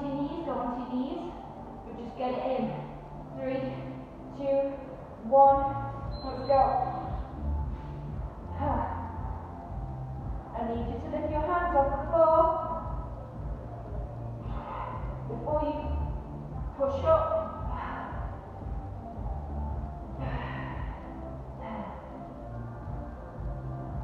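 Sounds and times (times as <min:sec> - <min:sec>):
background music with low beat: 0:00.0 - 0:24.0.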